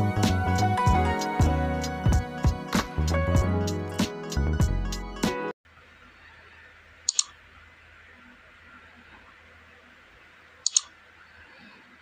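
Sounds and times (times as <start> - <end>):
mouse clicks: 7.1 - 7.4, 10.6 - 10.9.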